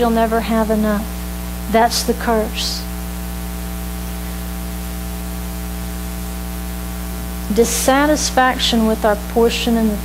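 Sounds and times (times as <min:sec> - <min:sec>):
electrical mains hum: 0:00.0 - 0:10.0
static hiss: 0:00.0 - 0:10.0.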